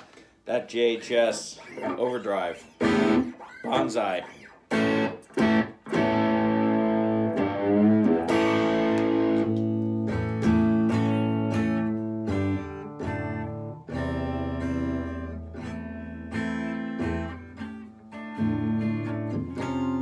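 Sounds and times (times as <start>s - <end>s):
overdriven electric guitar chords: 2.8s - 20.0s.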